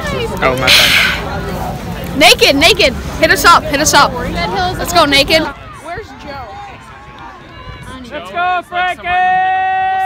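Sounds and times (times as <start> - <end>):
low crowd murmur: 0.0 - 10.0.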